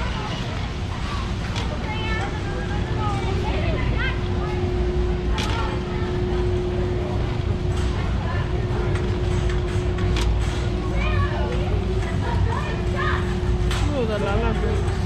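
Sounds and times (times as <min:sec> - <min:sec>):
faint shopper chatter: 0:00.0 - 0:15.0
shopping cart rolling on concrete: 0:00.0 - 0:15.0
steady hum: 0:00.0 - 0:15.0.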